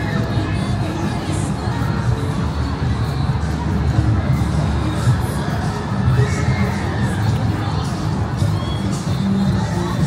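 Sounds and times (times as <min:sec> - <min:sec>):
music with heavy bass: 0:00.0 - 0:10.0
children shouting: 0:04.9 - 0:07.8.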